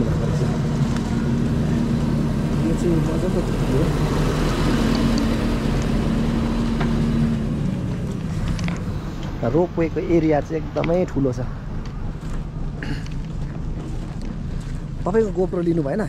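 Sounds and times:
engine hum: 0.0s - 16.0s.

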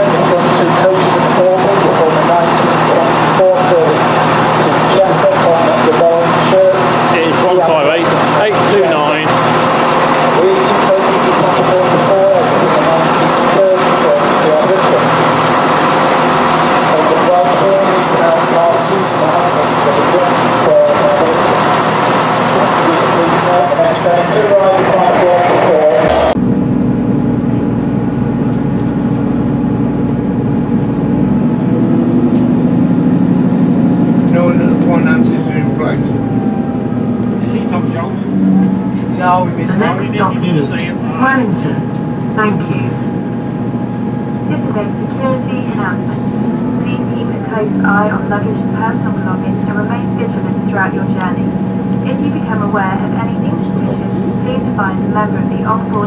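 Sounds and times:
diesel train pulling in: 0.0s - 56.0s
train engine humming inside: 0.0s - 56.0s.

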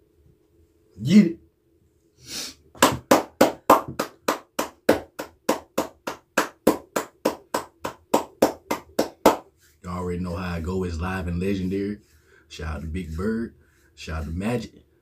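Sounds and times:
man clapping hands: 2.8s - 9.5s.

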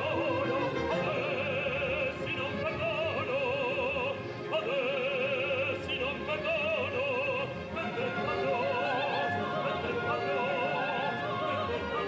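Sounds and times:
male operatic baritone singing: 0.0s - 12.0s.

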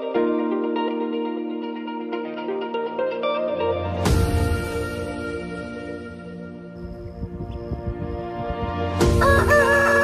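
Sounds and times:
background music: 0.0s - 10.0s
rooster crowing: 9.2s - 10.0s.

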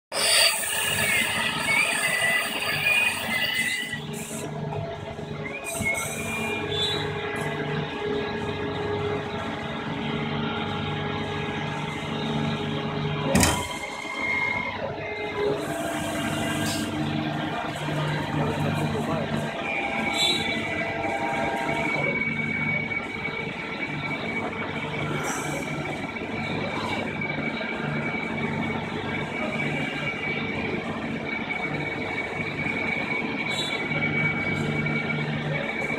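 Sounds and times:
wavering squeal: 0.1s - 4.5s, 5.4s - 7.4s, 13.4s - 28.3s
machining center humming and whining: 0.1s - 35.9s.

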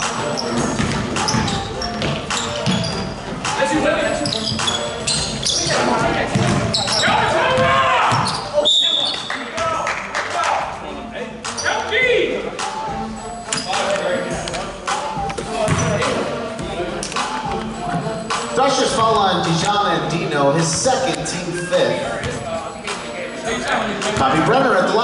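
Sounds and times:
players' voices: 0.0s - 25.0s
ball bouncing on hardwood: 6.3s - 6.7s.

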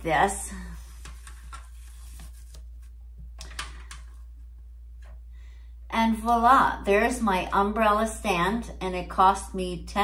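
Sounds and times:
steady low hum: 0.0s - 10.0s
ribbon rustling: 0.6s - 4.2s.

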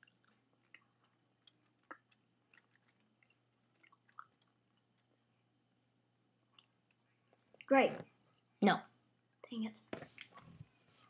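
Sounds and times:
person chewing food: 0.0s - 5.4s, 6.5s - 7.7s.

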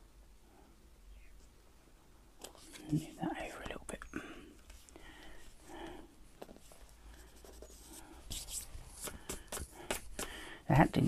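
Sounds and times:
paper rustling and scuffing: 6.4s - 10.3s.

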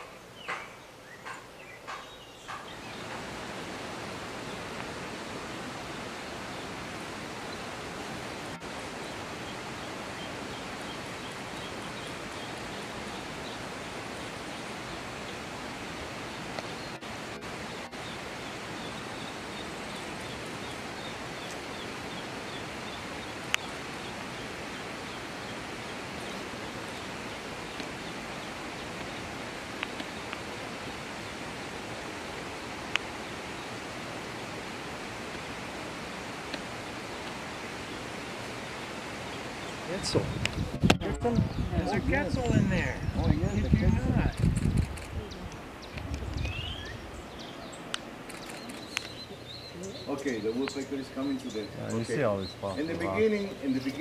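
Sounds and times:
steady rushing noise: 2.7s - 49.2s
sharp clicks: 44.4s - 45.2s, 47.9s - 49.2s.

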